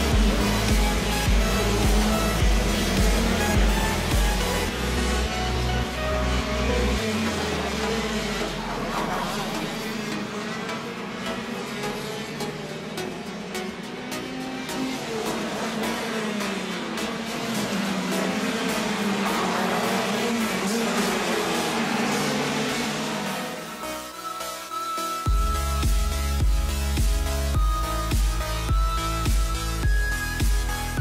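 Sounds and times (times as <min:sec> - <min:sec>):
kart engine running: 0:00.0 - 0:23.8.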